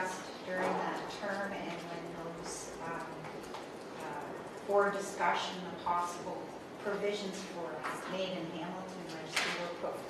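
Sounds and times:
woman talking: 0.0 - 3.4, 4.0 - 10.0.

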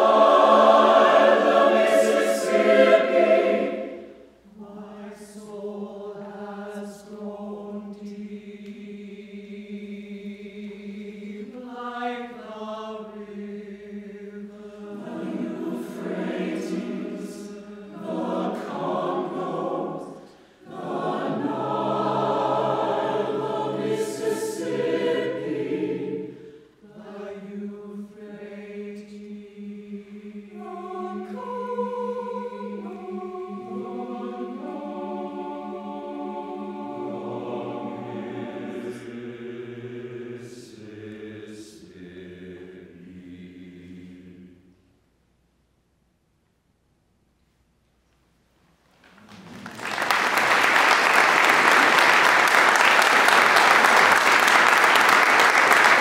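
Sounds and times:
mixed choir singing: 0.0 - 44.7, 50.3 - 56.0
short breaths: 20.2 - 20.7, 26.3 - 26.8.

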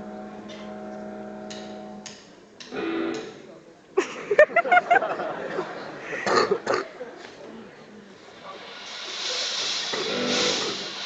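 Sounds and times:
amplified guitar notes: 0.0 - 3.5, 10.0 - 10.8
audience murmur: 2.1 - 11.0.

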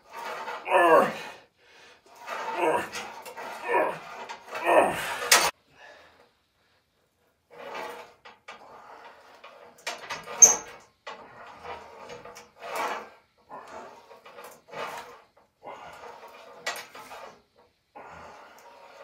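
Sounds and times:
cable rubbing over pulleys: 0.0 - 5.6, 7.4 - 19.0.

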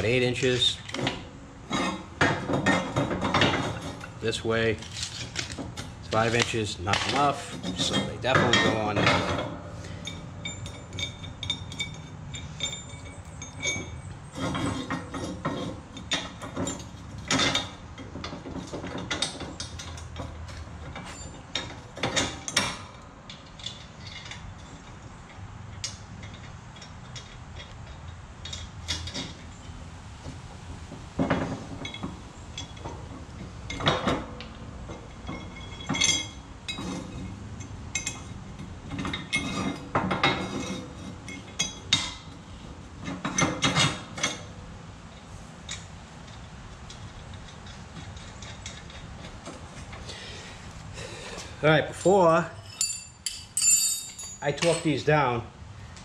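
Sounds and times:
metal bolts and nuts clinking: 0.0 - 50.4, 51.6 - 55.4.

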